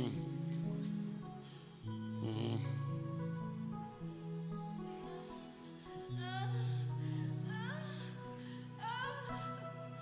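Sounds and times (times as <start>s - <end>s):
soft keyboard chords: 0.0s - 10.0s.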